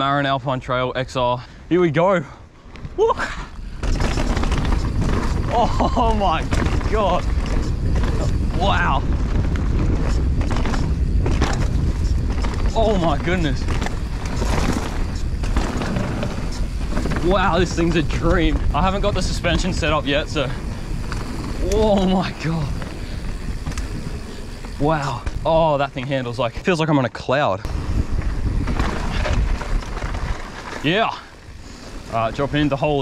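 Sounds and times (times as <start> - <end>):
mountain bike rolling on dirt: 0.0 - 33.0
wind buffeting microphone: 2.7 - 26.5, 27.6 - 33.0
bike knocks and rattles: 3.6 - 26.4, 27.7 - 33.0.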